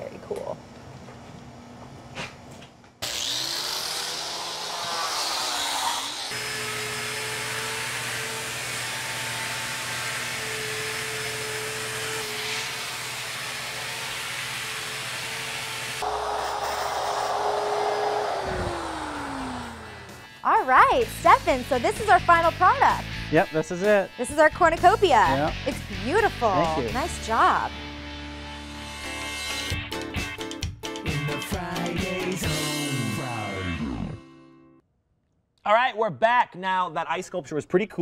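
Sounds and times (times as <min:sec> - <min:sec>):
rotary grinder motor whine: 0:03.0 - 0:20.4.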